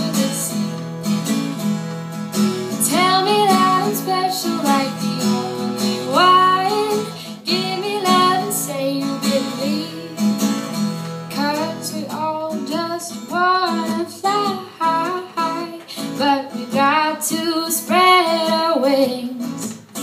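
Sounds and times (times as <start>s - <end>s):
woman singing: 0.0s - 1.3s, 2.7s - 19.7s
acoustic guitar strumming: 0.0s - 20.0s.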